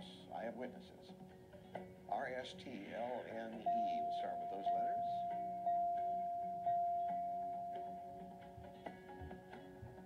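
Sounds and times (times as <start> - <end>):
single-tone chime ding: 3.7 - 8.2.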